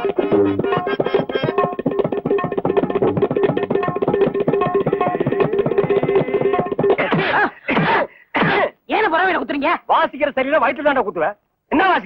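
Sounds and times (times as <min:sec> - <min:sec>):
harmonium and tabla music: 0:00.0 - 0:07.0.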